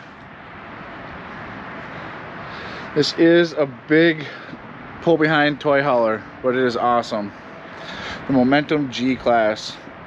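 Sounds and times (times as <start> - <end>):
outdoor background hiss: 0.0 - 10.0.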